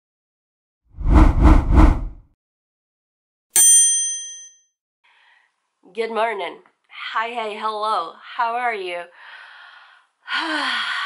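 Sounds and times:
low rushing pulses: 0:01.0 - 0:02.2
bright ding: 0:03.6 - 0:04.6.

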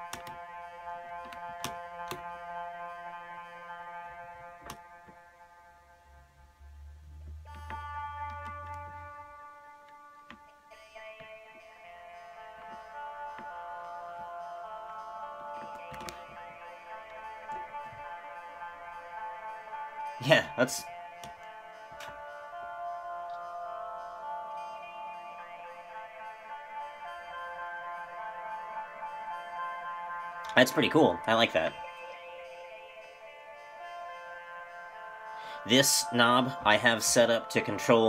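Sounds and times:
synthesizer sustained notes: 0:00.0 - 0:38.0
sharp clicks: 0:15.5 - 0:18.0.

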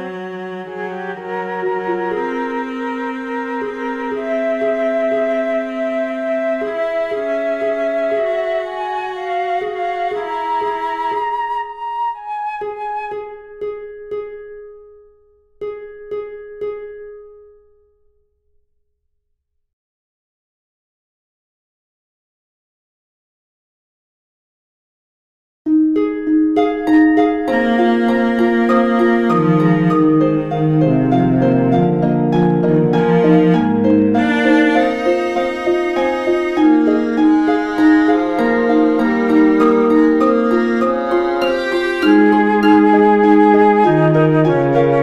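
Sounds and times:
cello line: 0:00.0 - 0:14.4, 0:26.9 - 0:45.0
harp broken chords: 0:12.6 - 0:18.1, 0:25.7 - 0:45.0
flute holding a note: 0:34.2 - 0:45.0.

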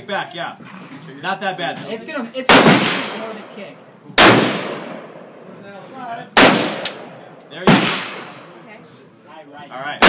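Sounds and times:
rifle shot echoing: 0:02.5 - 0:03.3, 0:04.2 - 0:05.4, 0:06.4 - 0:08.6.

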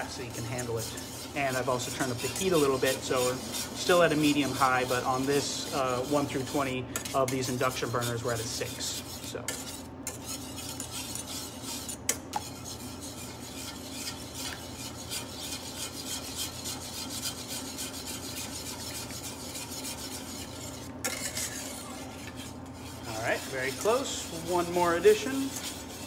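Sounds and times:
utensil scraping a saucepan: 0:00.0 - 0:26.0.

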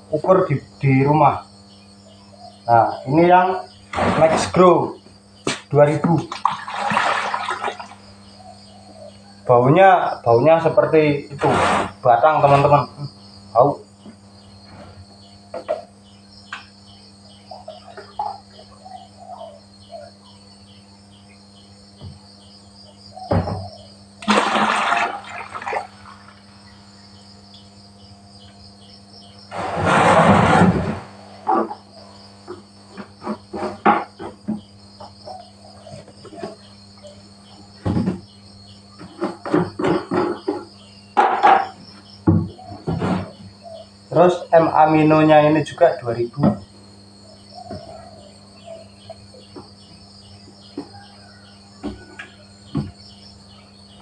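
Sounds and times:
insects chirping: 0:00.0 - 0:54.0
liquid pouring into bucket: 0:06.3 - 0:08.0, 0:24.2 - 0:26.4.

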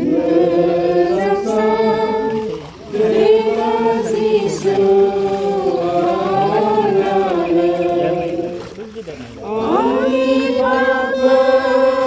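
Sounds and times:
group singing a slow hymn: 0:00.0 - 0:12.0.

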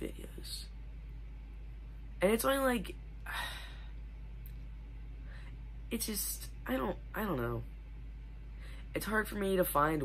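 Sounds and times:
steady low hum: 0:00.0 - 0:10.0
boy sighing: 0:03.2 - 0:04.0.

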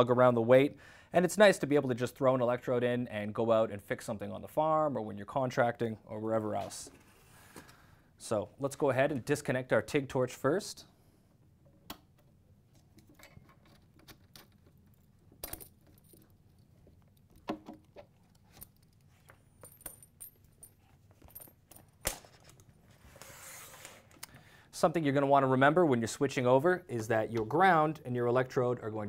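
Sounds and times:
clicks and knocks of parts: 0:11.7 - 0:22.7.

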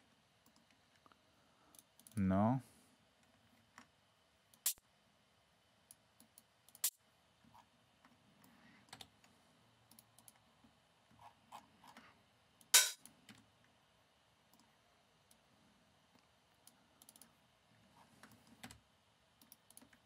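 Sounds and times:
mouse and keyboard clicks: 0:17.0 - 0:17.3.

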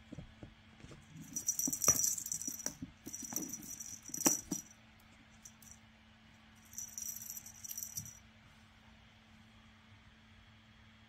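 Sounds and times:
cat toy jingling: 0:01.1 - 0:04.7, 0:06.6 - 0:08.2.

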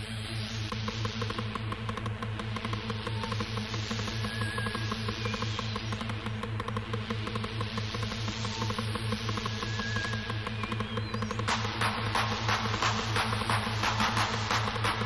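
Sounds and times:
fast electronic techno beat: 0:00.0 - 0:15.0.

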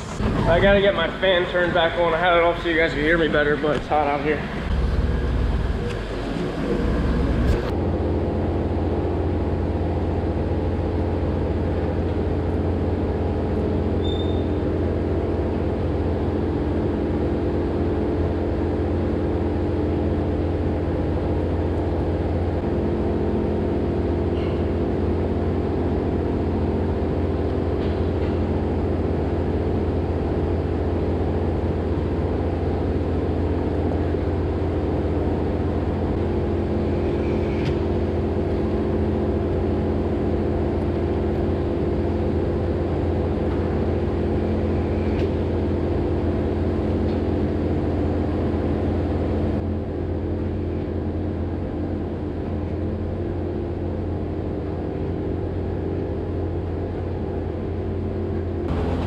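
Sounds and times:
electric fan humming: 0:00.0 - 0:50.5, 0:52.7 - 0:59.0.

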